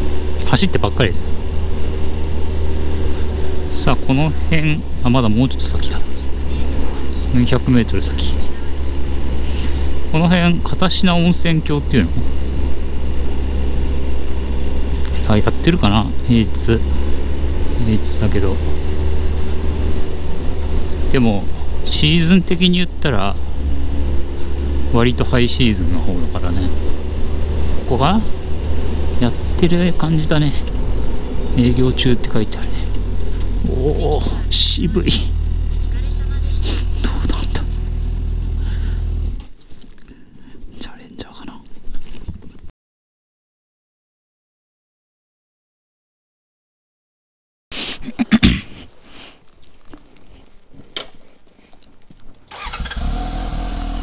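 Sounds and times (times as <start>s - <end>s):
motorcycle engine running: 0.0s - 39.6s, 52.5s - 54.0s
wind and road noise: 0.0s - 40.8s, 48.7s - 54.0s.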